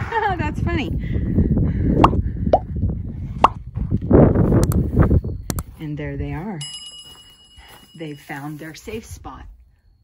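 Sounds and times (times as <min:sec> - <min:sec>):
steady low rumble: 0:00.0 - 0:06.6.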